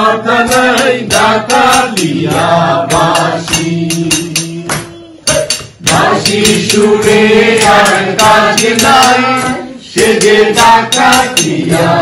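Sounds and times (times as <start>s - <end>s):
hand clapping: 0.0s - 12.0s
person singing unaccompanied: 0.0s - 12.0s.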